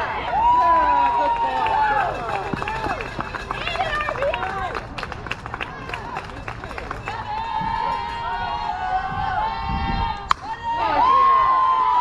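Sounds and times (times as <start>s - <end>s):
people clapping: 0.0s - 8.3s
crowd yelling and cheering: 0.0s - 12.0s
long drawn-out shout: 7.1s - 12.0s.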